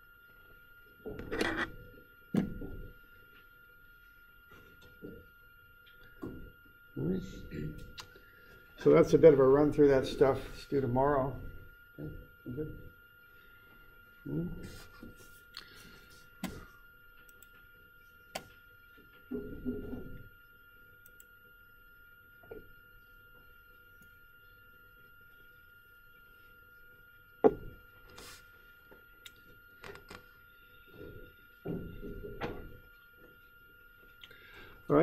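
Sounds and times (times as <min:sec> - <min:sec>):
faint electrical whine: 0:00.0 - 0:35.0.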